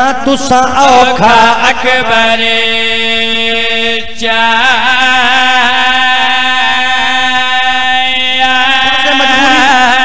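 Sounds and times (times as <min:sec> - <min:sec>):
men chanting through microphones: 0:00.0 - 0:10.0.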